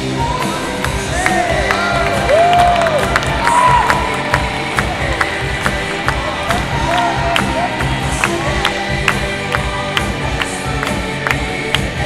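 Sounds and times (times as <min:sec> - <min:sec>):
crowd cheering: 0:00.4 - 0:09.2
whooping shouts: 0:01.1 - 0:04.3.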